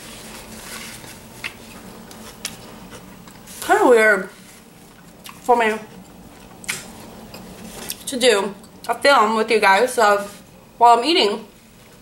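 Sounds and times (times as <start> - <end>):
paper napkin rustling: 0.0 - 4.9, 6.8 - 8.0, 10.1 - 10.5.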